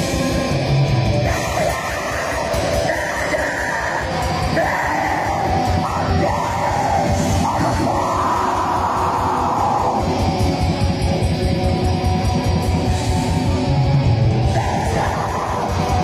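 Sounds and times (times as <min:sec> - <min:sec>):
distorted guitars: 0:00.0 - 0:16.0
screamed vocals: 0:01.2 - 0:10.4, 0:14.4 - 0:16.0.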